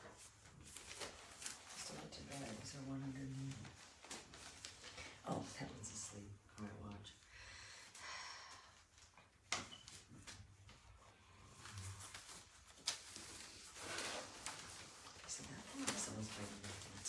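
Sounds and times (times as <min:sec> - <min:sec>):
paper rustling and clicking: 0:00.0 - 0:05.2, 0:11.6 - 0:17.0.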